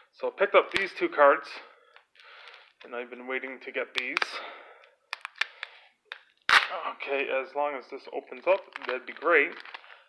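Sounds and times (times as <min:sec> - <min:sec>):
plastic case clicking and crinkling: 0:05.1 - 0:06.4, 0:08.4 - 0:10.0.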